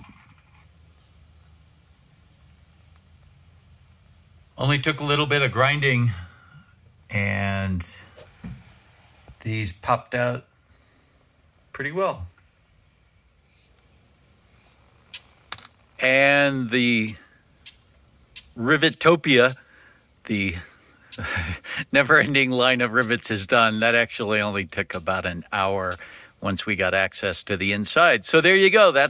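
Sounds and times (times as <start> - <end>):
faint steady low hum: 0.0 - 29.0.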